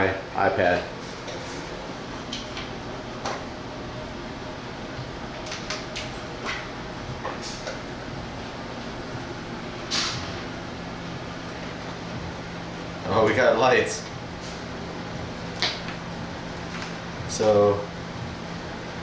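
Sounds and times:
low room hum: 0:00.0 - 0:19.0.

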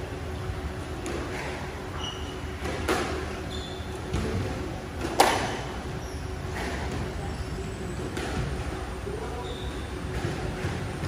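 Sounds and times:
steady hum: 0:00.0 - 0:11.0
sneaker squeaks on wooden floor: 0:01.9 - 0:02.7, 0:03.3 - 0:04.2, 0:05.9 - 0:06.4, 0:09.4 - 0:10.0
squash ball knocks: 0:05.0 - 0:05.6.

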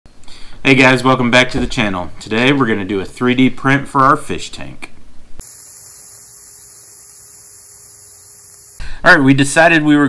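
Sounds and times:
electrical hum with high hiss: 0:05.2 - 0:09.0.

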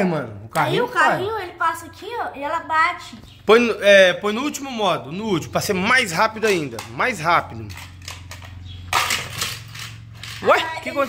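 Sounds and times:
toy car clattering on plastic track: 0:06.4 - 0:10.7
toy car launcher snap: 0:07.8 - 0:10.5.

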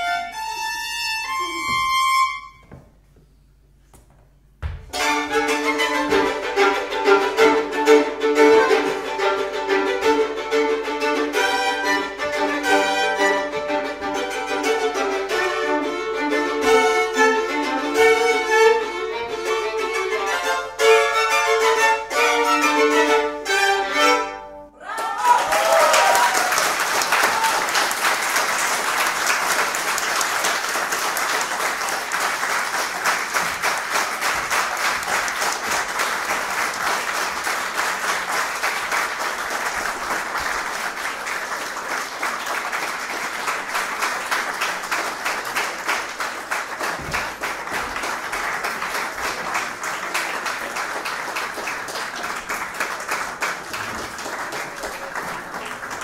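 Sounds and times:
audience applauding: 0:24.8 - 0:56.0.

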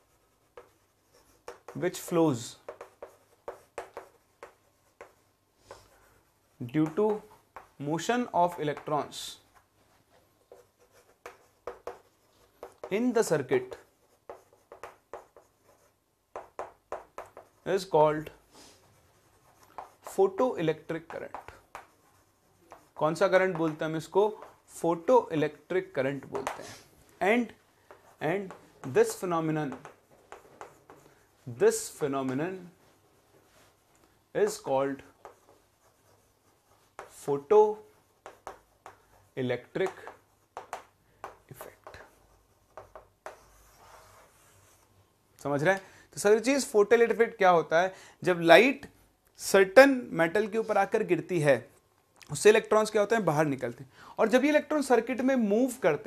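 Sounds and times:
chalk scratching on chalkboard: 0:00.0 - 0:33.8, 0:34.4 - 0:45.0.

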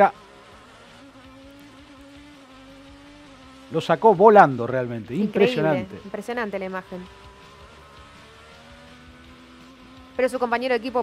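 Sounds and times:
faint buzzing engine drone: 0:00.0 - 0:11.0.

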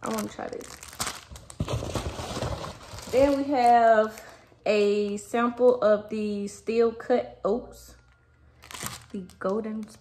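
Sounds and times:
fabric bag rustling: 0:00.0 - 0:04.4
plastic packets rustling: 0:00.0 - 0:05.9, 0:08.0 - 0:10.0.

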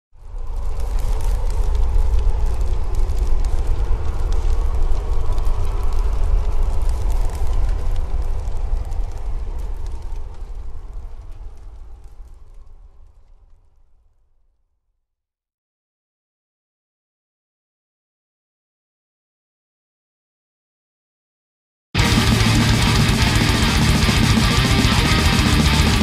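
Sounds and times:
deep low rumble: 0:00.2 - 0:13.0, 0:22.0 - 0:26.0
steady crackling: 0:22.0 - 0:26.0.

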